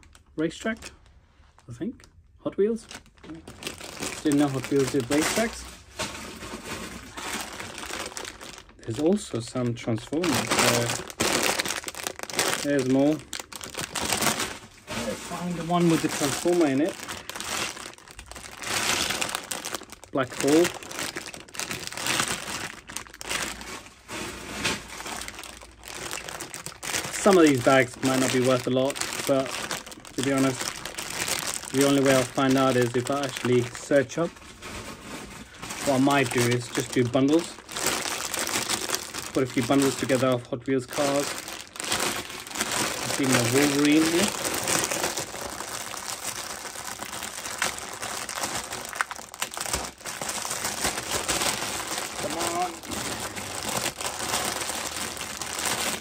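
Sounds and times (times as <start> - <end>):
plastic bags crinkling: 0.0 - 56.0.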